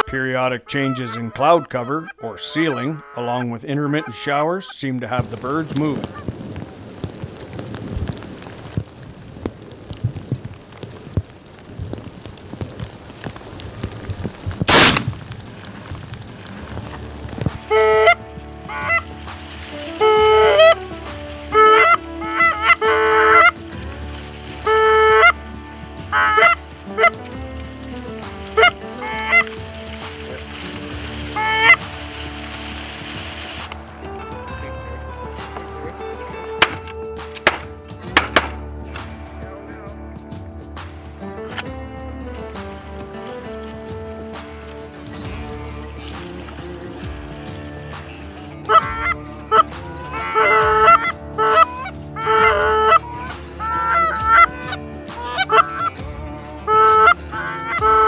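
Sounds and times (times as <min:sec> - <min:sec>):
geese honking: 0:00.0 - 0:06.3, 0:14.7 - 0:38.6, 0:41.5 - 0:58.0.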